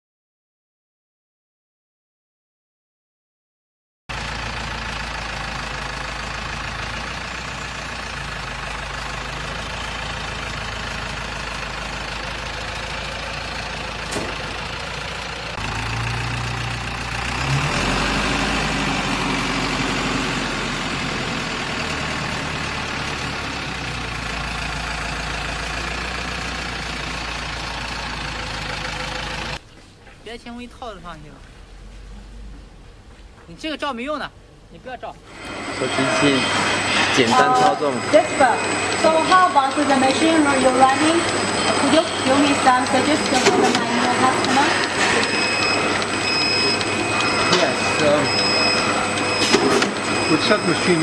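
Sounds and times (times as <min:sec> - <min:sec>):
forklift engine running: 0:04.1 - 0:30.0, 0:30.8 - 0:33.4, 0:35.2 - 0:51.0.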